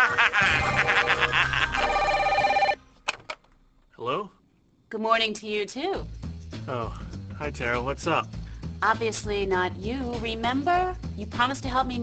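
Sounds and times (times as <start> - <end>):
people laughing: 0.0 - 2.1
telephone ringing: 0.8 - 2.8.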